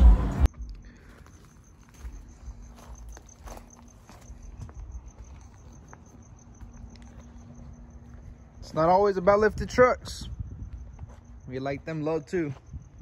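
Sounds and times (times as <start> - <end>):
cricket chirping: 0.4 - 13.0.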